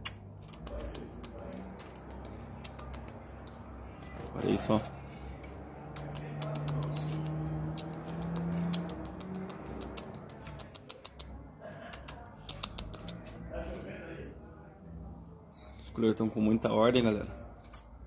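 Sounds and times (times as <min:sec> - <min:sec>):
birds clicking and chipping: 0:00.0 - 0:18.0.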